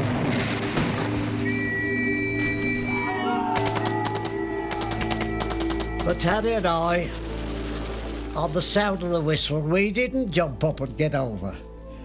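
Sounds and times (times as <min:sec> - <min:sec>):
music with sustained low notes: 0:00.0 - 0:12.0
whistle blowing long blast: 0:01.4 - 0:06.8
rapid machine-gun fire: 0:07.1 - 0:09.0.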